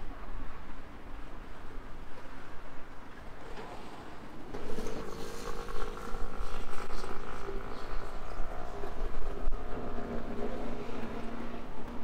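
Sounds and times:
traffic and street noise: 0:00.0 - 0:12.0.

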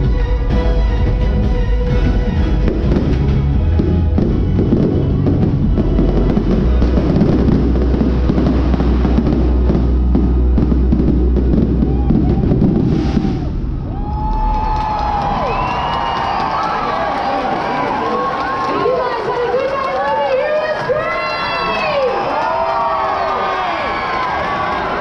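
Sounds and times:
crowd cheering and shouting: 0:00.0 - 0:25.0
fireworks bursting: 0:02.1 - 0:18.2.

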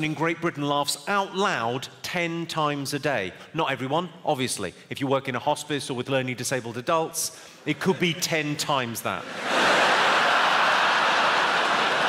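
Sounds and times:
audience laughing and applauding: 0:09.2 - 0:12.0.

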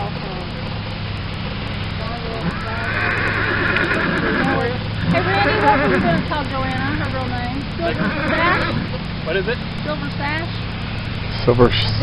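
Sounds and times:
horse whinnying: 0:02.4 - 0:06.3, 0:07.8 - 0:09.0.

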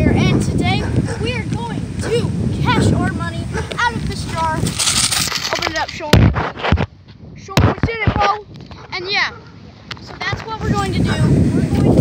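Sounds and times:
boy talking: 0:00.0 - 0:06.3, 0:07.4 - 0:09.4, 0:10.0 - 0:12.0.

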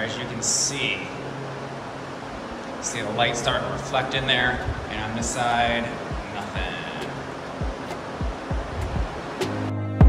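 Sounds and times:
man speaking: 0:00.0 - 0:01.2, 0:02.8 - 0:07.4
even hiss: 0:00.0 - 0:09.7
low mechanical hum: 0:00.0 - 0:10.0.

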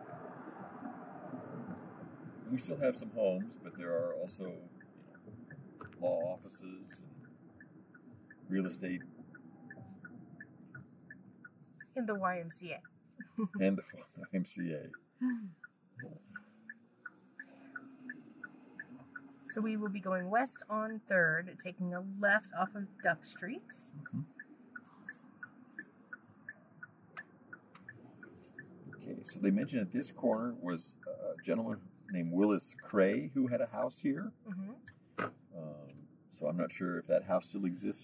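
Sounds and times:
road and engine hum: 0:00.0 - 0:38.0
car turn signal clicking: 0:00.1 - 0:36.2.

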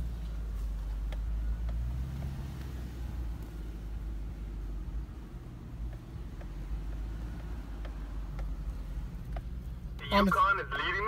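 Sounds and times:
truck engine and tyres rumbling: 0:00.0 - 0:11.0
faint clicks: 0:00.9 - 0:03.6, 0:05.8 - 0:10.0.

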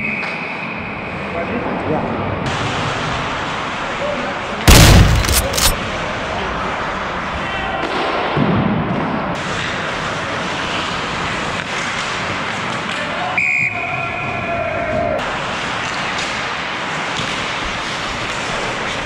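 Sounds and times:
skates on ice and wind rush: 0:07.2 - 0:13.3, 0:15.2 - 0:19.0.

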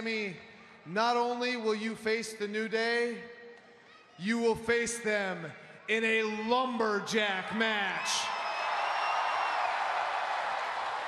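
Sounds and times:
crowd cheering and applauding: 0:08.2 - 0:11.0.

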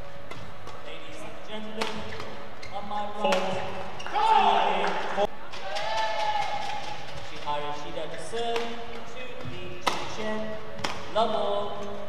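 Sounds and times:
shoe squeaks on court: 0:01.9 - 0:03.3.

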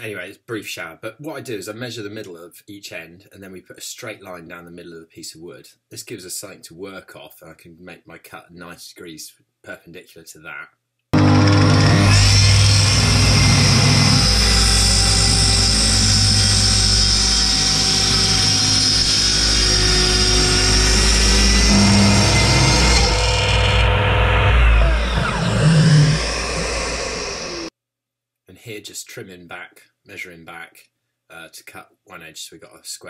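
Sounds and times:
track saw cutting wood: 0:11.2 - 0:27.7.

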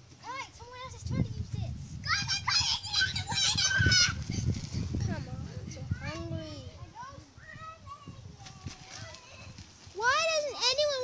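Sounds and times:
children shouting and squealing: 0:00.2 - 0:05.0, 0:05.6 - 0:11.0.

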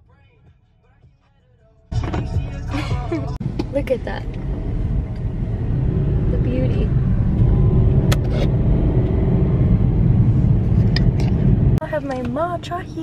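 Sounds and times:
car cabin road rumble: 0:01.9 - 0:13.0.

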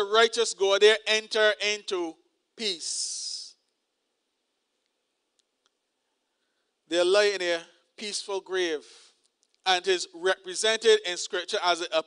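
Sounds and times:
man speaking: 0:00.0 - 0:03.6, 0:06.9 - 0:12.0.

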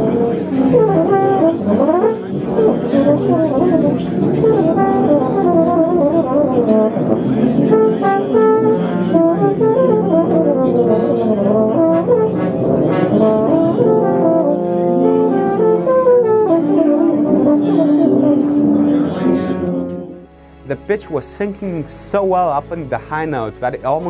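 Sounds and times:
euphonium playing high notes: 0:00.0 - 0:24.0.

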